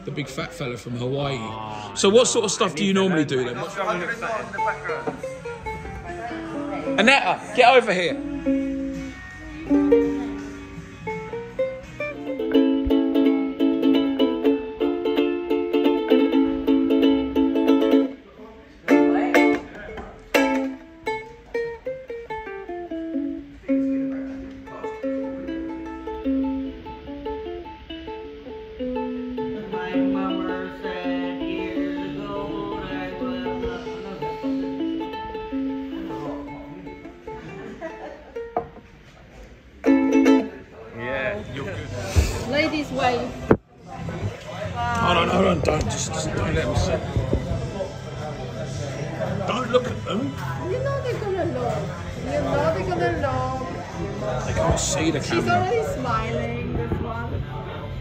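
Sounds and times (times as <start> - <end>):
ukulele strumming and picking: 4.6 - 18.2, 18.8 - 40.8.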